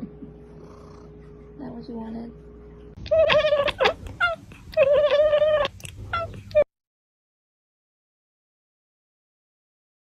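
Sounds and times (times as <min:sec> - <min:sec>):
cat chirps: 0:03.0 - 0:06.7
cat meowing: 0:03.0 - 0:06.7.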